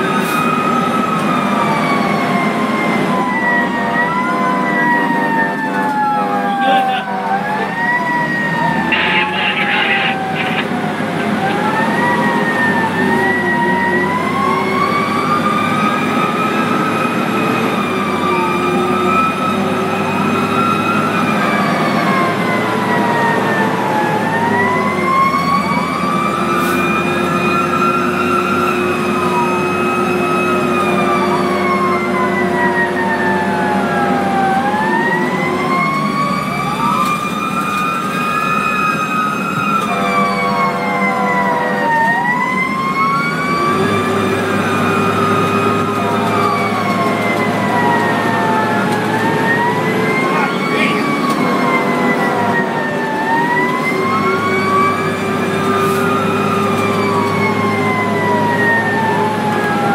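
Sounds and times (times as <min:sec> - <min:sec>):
faster siren wail: 0:00.0 - 0:59.9
slow wailing siren: 0:00.0 - 0:59.9
long horn blasts: 0:39.8 - 0:42.0.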